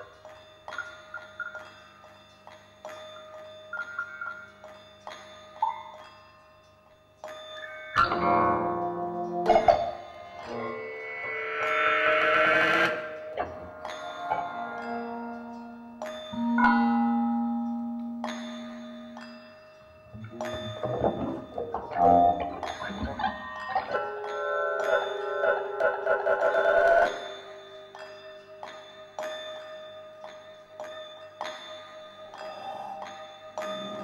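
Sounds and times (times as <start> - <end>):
bell-like chiming music: 0.0 - 34.0.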